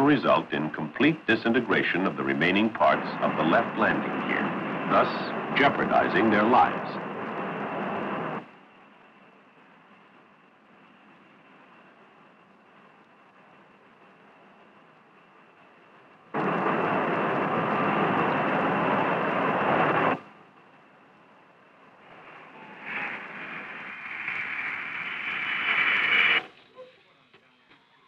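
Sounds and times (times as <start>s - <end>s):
jet engines whining: 0.0s - 28.0s
loud rushing noise: 16.4s - 20.3s, 21.9s - 26.5s.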